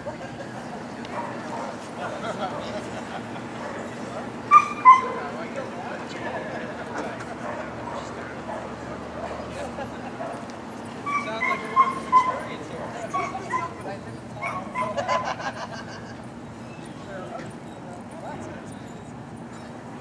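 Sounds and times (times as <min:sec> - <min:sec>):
crowd chatter: 0:00.0 - 0:20.0
dog whining and yipping: 0:04.5 - 0:05.4, 0:11.0 - 0:15.3.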